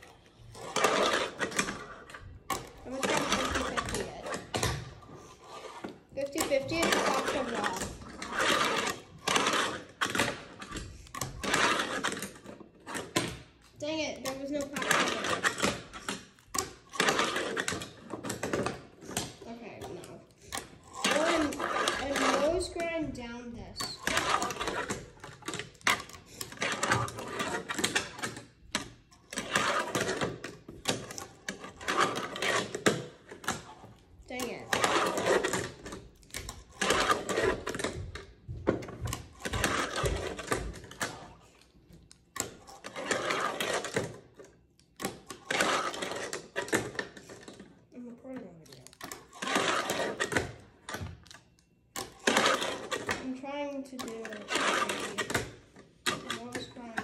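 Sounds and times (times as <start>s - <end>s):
fingerboard rolling and clacking: 0.0s - 47.9s, 48.8s - 53.3s, 54.0s - 57.0s
child's voice: 6.2s - 7.9s, 13.8s - 14.8s, 21.1s - 24.5s, 48.0s - 48.8s, 53.2s - 54.5s, 56.3s - 57.0s.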